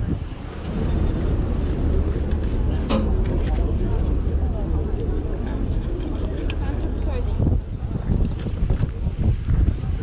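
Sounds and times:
ferry engine rumble: 0.0s - 10.0s
wind buffeting microphone: 0.0s - 10.0s.

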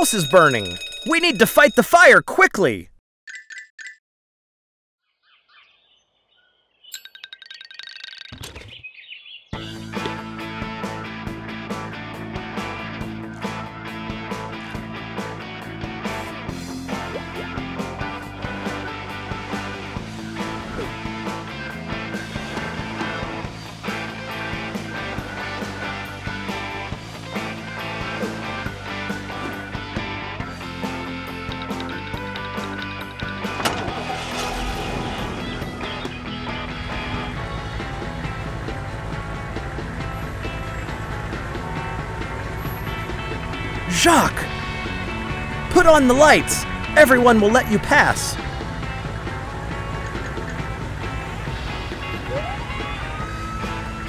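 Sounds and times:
cartoon fire truck engine: 0.0s - 2.9s, 16.0s - 54.0s
cartoon background music: 0.0s - 3.6s, 9.6s - 54.0s.

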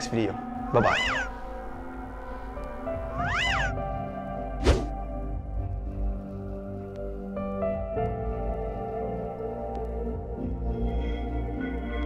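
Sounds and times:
background music: 0.0s - 12.0s
cat meow: 0.8s - 1.3s, 3.2s - 3.7s.

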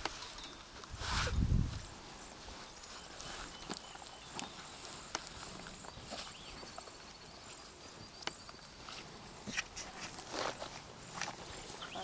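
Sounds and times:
footsteps through grass: 0.0s - 12.0s
faint bird chirps: 2.1s - 9.0s, 11.1s - 12.0s.

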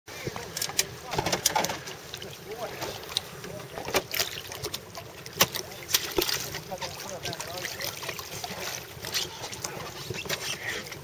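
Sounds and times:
small waves slapping hulls: 0.2s - 11.0s.

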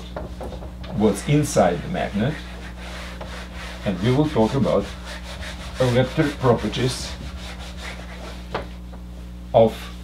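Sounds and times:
low electrical hum: 0.0s - 10.0s
marker rubbing on whiteboard: 1.6s - 8.8s.

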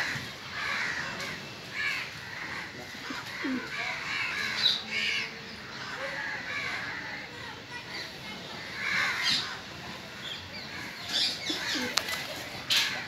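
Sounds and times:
crows cawing: 0.0s - 7.3s, 8.6s - 12.1s.

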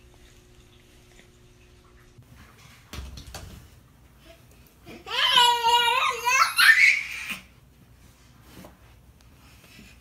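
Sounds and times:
toddler squealing and laughing: 5.0s - 7.5s.

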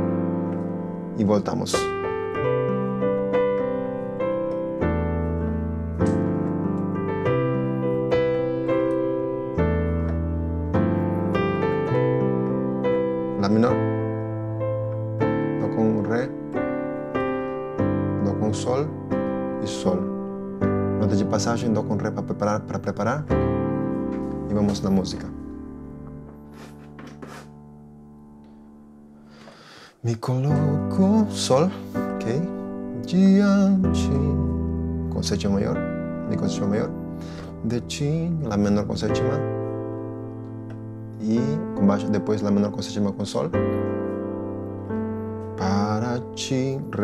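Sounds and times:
digital piano playing slow chords: 0.0s - 47.0s.

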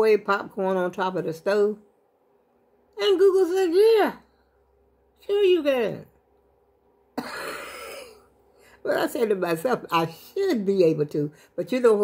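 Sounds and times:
woman's breathy laugh: 7.2s - 8.3s.

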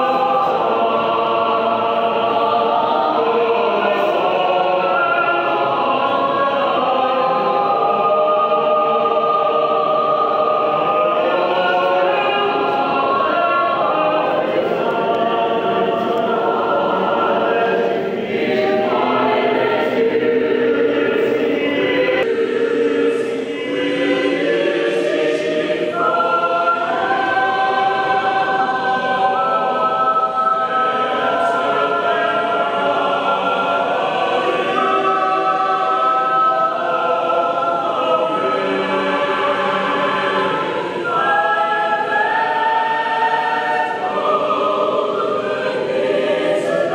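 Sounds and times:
mixed choir singing: 0.0s - 46.9s.

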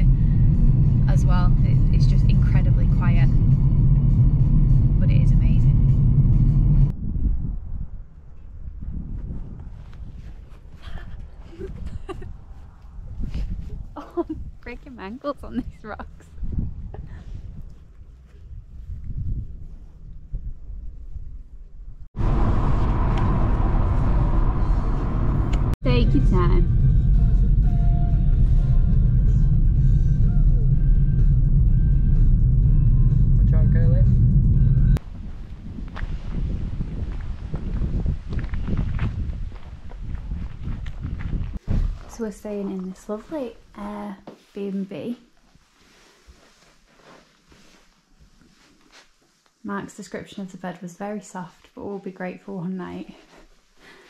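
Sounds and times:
road rumble inside car: 0.0s - 7.0s, 22.1s - 35.6s
wind noise on microphone: 0.0s - 43.8s.

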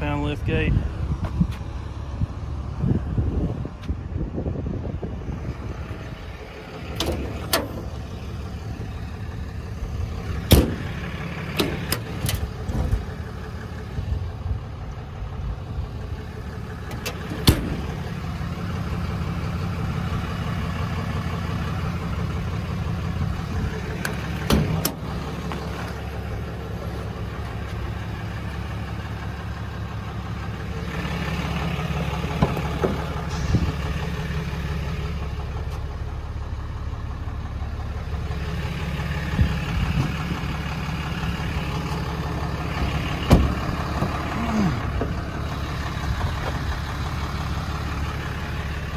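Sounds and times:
diesel engine idling: 0.0s - 48.9s.

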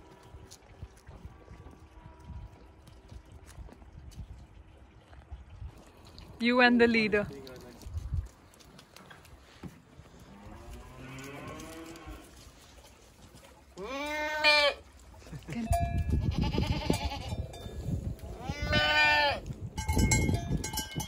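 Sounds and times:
goats bleating: 13.8s - 14.8s, 16.1s - 17.4s, 18.3s - 19.4s.

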